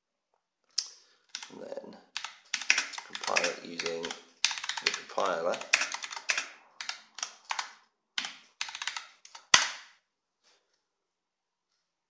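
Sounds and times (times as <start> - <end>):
computer keyboard typing: 1.3 - 9.9.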